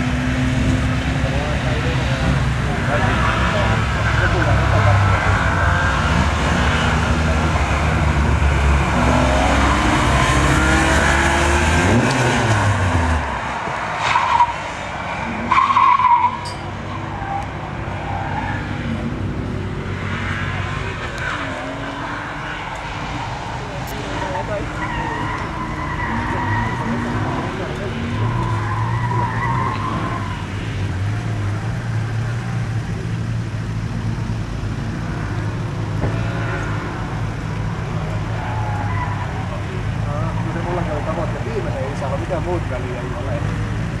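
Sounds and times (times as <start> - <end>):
race car engine droning: 0.0 - 44.0
people talking: 1.1 - 5.4, 23.6 - 25.4, 26.0 - 29.9, 38.9 - 43.6.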